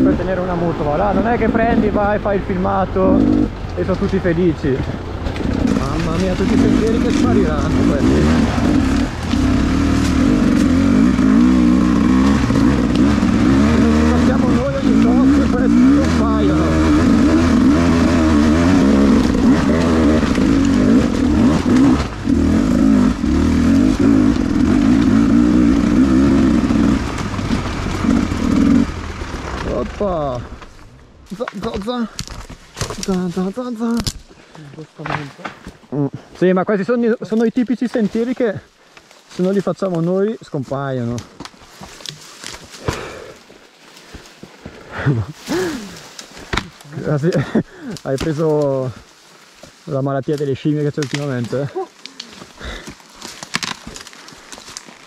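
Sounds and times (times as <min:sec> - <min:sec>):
motorcycle engine revving: 0:00.0 - 0:30.9.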